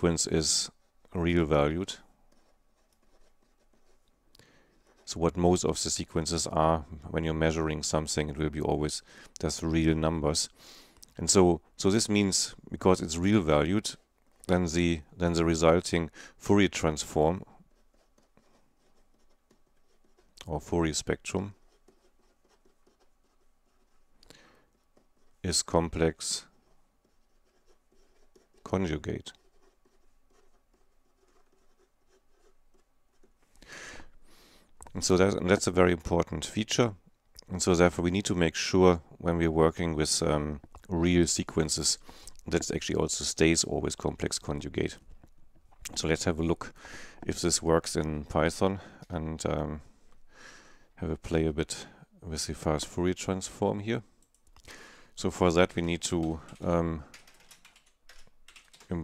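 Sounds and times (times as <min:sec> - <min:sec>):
pen scratching on paper: 0:00.2 - 0:04.1, 0:04.7 - 0:05.7, 0:16.7 - 0:33.4
computer keyboard typing: 0:55.6 - 0:59.0.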